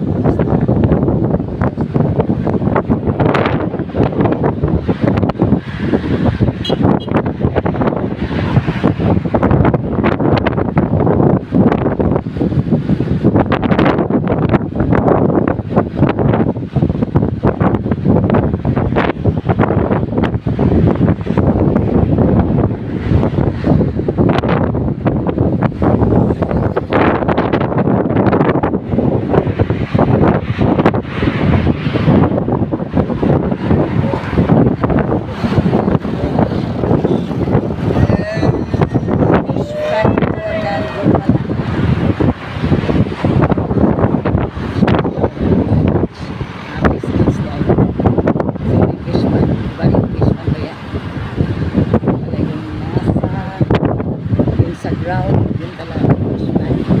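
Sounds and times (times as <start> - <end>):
road and engine noise: 0.0 - 57.0
wind buffeting microphone: 0.0 - 57.0.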